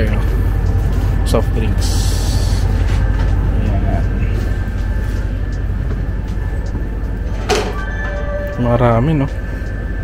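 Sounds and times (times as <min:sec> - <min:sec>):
low rumble and hum: 0:00.0 - 0:10.0.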